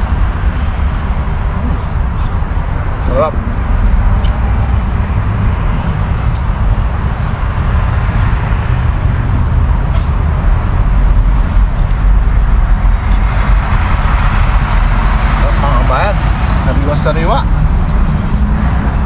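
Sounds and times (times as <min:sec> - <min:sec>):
loud low rumbling noise: 0:00.0 - 0:19.0.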